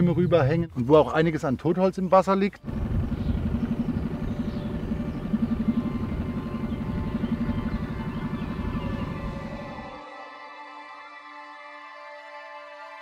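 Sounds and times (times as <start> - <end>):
outboard motor running: 2.6 - 10.0.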